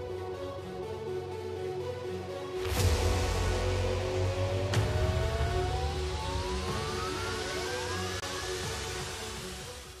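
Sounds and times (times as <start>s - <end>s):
dramatic background music: 0.0s - 10.0s.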